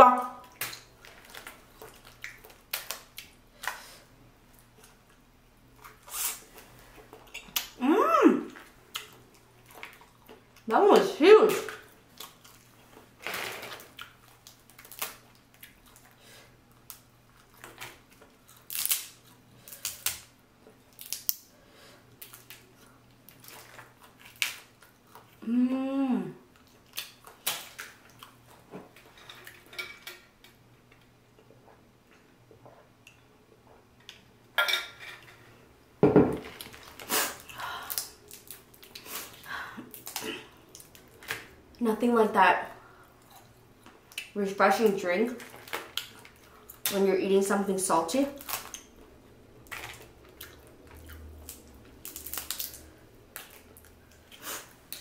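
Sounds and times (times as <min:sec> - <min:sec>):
person humming: 0:07.8 - 0:08.6, 0:25.4 - 0:26.4
crawfish shells cracking: 0:13.7 - 0:16.0, 0:16.8 - 0:20.3, 0:20.9 - 0:21.5, 0:49.6 - 0:54.3.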